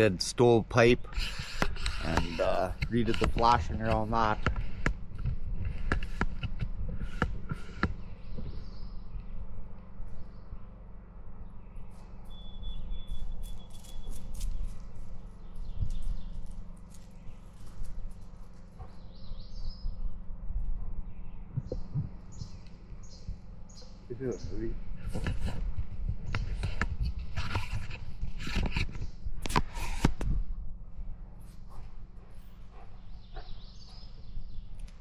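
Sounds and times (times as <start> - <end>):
small birds chirping: 0.0 - 29.4, 31.6 - 35.0
low rumble on microphone: 0.0 - 35.0.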